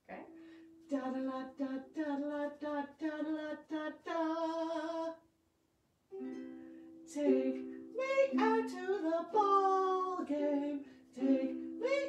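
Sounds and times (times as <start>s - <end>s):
ukulele chord strummed: 6.1s - 12.0s.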